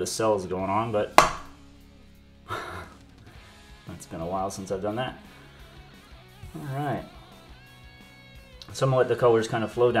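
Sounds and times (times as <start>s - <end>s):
cup knocking on canvas: 1.2s - 1.6s.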